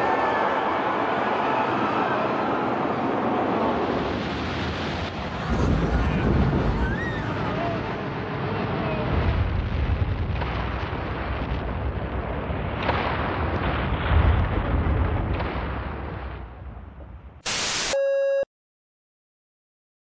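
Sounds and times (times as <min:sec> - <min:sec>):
building collapsing rumble: 0:02.8 - 0:17.4
burst of static: 0:17.4 - 0:18.4
short electronic beep: 0:17.5 - 0:18.5.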